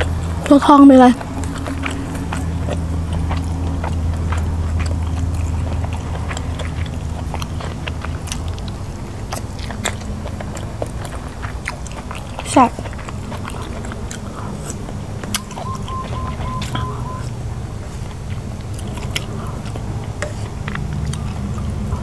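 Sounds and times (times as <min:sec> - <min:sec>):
close-up chewing: 0:00.0 - 0:22.0
low hum: 0:12.9 - 0:22.0.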